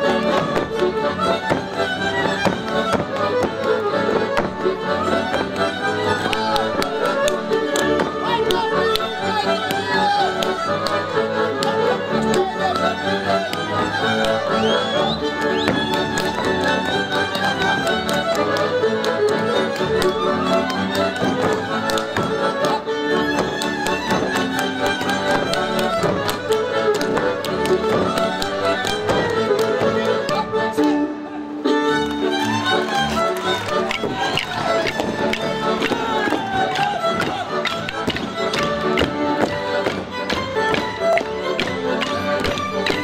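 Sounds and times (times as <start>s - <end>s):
accordion: 0.0s - 43.0s
violins: 0.0s - 43.0s.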